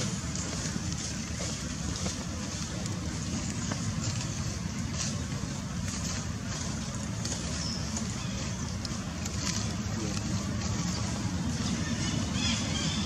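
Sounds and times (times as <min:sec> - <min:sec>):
low rumble and hiss: 0:00.0 - 0:13.0.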